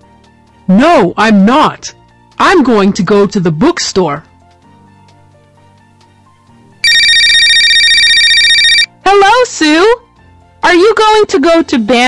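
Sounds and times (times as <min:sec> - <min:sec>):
soft background music: 0:00.0 - 0:12.0
mobile phone ringtone: 0:06.8 - 0:08.9.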